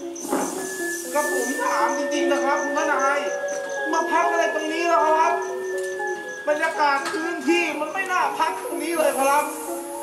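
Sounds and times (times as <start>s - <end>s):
long steady high note: 0.0s - 10.0s
voices: 0.0s - 10.0s
traditional ensemble music: 0.3s - 8.5s.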